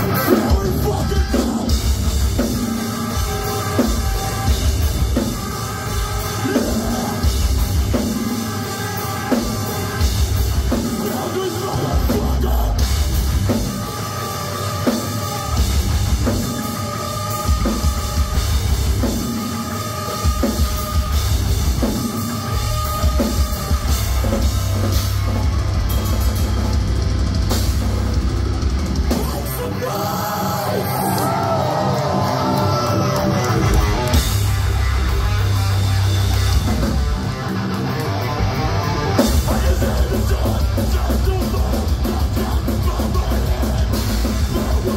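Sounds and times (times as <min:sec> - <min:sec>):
live metal band playing: 0:00.0 - 0:44.9.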